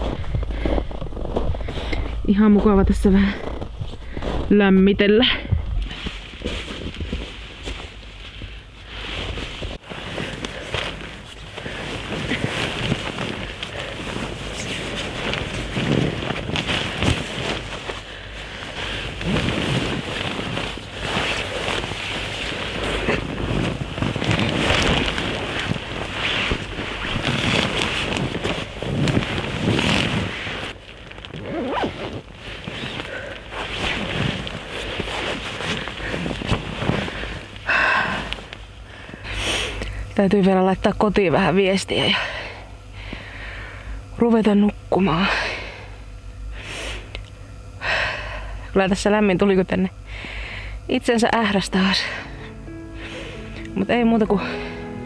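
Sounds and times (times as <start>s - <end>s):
nylon fabric rustling: 0.0s - 39.7s
zipping: 19.1s - 36.5s.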